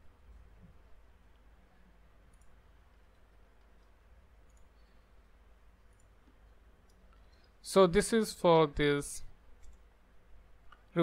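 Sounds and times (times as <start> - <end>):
faint low room hum: 0.0 - 11.0
computer mouse clicks: 2.2 - 5.0, 5.8 - 7.6, 9.6 - 9.9.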